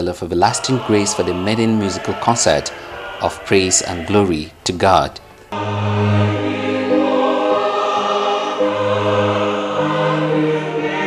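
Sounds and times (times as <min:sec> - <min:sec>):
choir singing gospel music: 0:00.0 - 0:11.0.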